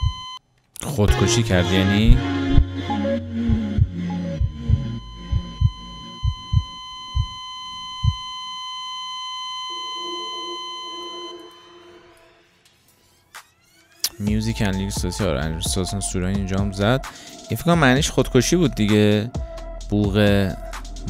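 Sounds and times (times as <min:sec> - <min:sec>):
heart monitor flatline beep: 0:00.0 - 0:00.4, 0:03.5 - 0:12.1
soft low chord: 0:01.1 - 0:06.2
heartbeat thumps: 0:03.4 - 0:08.3, 0:14.2 - 0:17.2, 0:19.4 - 0:21.0.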